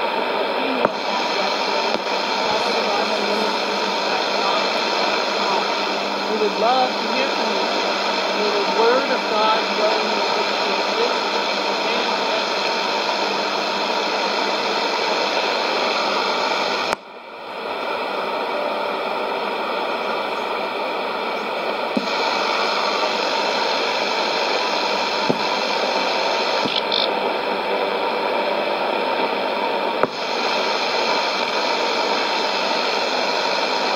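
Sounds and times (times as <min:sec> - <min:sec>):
radio static hiss: 0:00.0 - 0:33.9.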